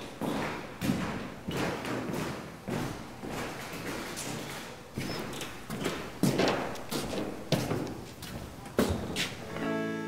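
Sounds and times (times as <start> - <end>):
footsteps on wooden floor: 0.0 - 9.5.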